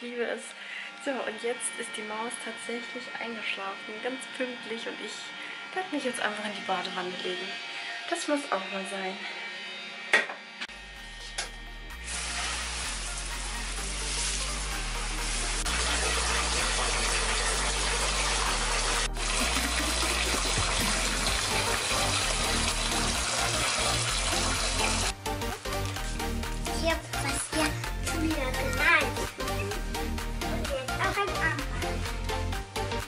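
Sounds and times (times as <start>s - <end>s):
water rushing from tap into bathtub: 12.1s - 25.2s
music with stepping bassline: 19.0s - 33.0s.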